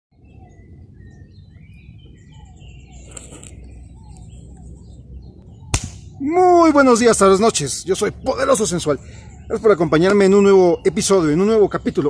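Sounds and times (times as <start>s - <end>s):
birds chirping: 0.1s - 12.0s
sharp click: 5.7s - 6.0s.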